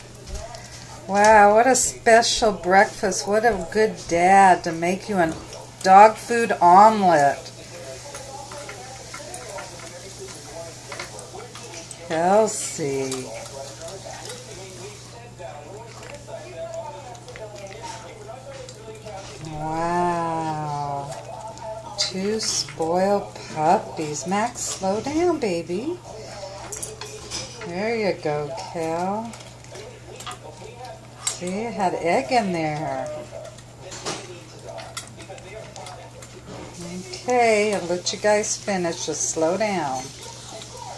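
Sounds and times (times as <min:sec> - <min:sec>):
dogs chewing and licking: 0:00.0 - 0:40.9
teeth clicking on metal bowl: 0:06.6 - 0:23.3, 0:26.4 - 0:38.4.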